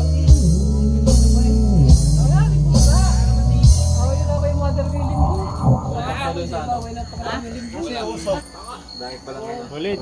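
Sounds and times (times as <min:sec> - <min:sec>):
men talking: 0:04.1 - 0:10.0.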